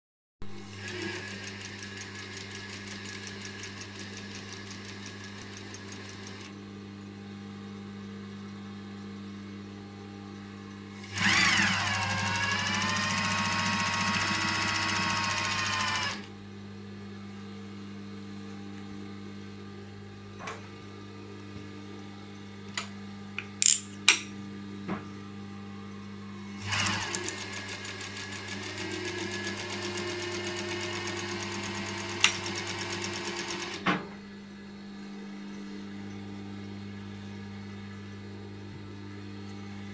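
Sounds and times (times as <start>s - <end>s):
motor hum: 0.4s - 39.9s
sewing machine stitching: 0.6s - 6.5s, 11.0s - 16.3s, 26.6s - 33.8s.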